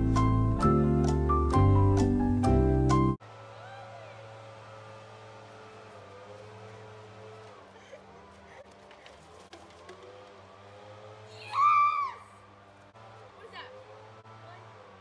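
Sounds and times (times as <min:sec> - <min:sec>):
girl yelling: 0:11.3 - 0:12.3.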